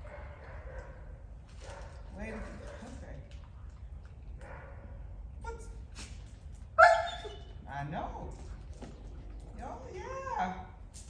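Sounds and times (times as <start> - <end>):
dog barking: 0.0 - 2.0, 4.4 - 5.6, 6.8 - 7.4.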